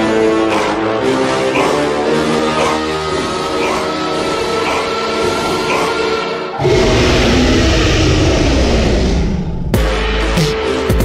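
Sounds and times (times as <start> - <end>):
deep rumble: 6.6 - 10.0.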